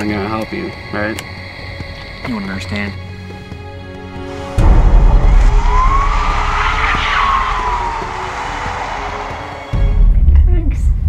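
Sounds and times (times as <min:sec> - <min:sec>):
car speeding past: 0:04.2 - 0:10.0.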